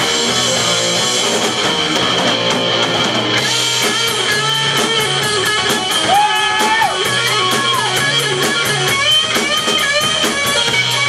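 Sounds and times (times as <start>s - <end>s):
bass line: 0.0s - 11.0s
drums: 0.0s - 11.0s
electric guitar bending notes: 0.0s - 11.0s.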